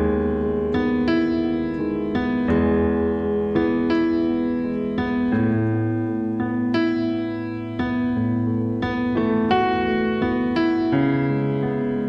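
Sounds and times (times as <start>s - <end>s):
slow piano ballad chords: 0.0s - 12.0s.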